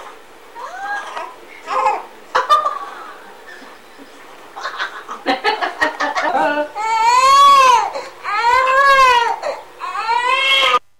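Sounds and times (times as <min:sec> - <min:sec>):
newborn baby crying: 0:00.6 - 0:02.2, 0:06.6 - 0:10.8
woman laughing: 0:02.3 - 0:06.8.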